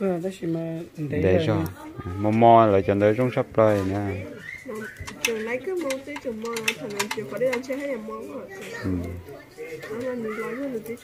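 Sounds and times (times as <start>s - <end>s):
bird calling: 3.0s - 5.8s.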